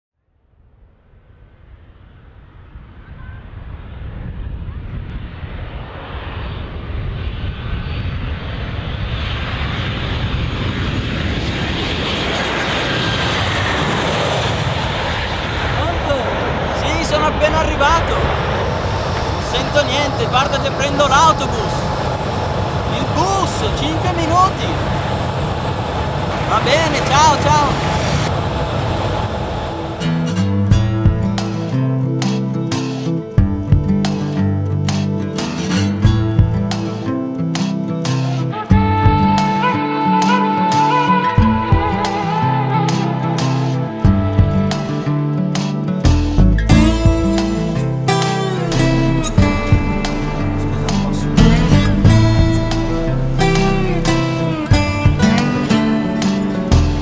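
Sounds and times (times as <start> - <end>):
airplane engine roar: 1.0 - 57.0.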